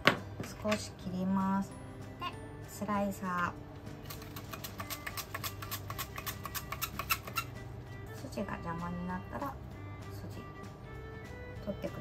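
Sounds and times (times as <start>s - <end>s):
celery crunching on mandoline slicer: 4.0s - 7.5s.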